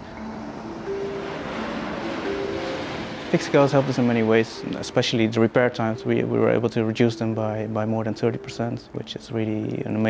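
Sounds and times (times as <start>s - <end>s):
jet engines roaring: 0.0s - 6.0s.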